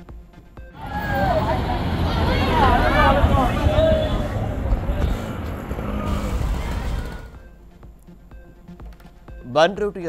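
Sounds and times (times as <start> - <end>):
faint voices: 0.8 - 7.4
bus engine rumble: 0.8 - 7.5.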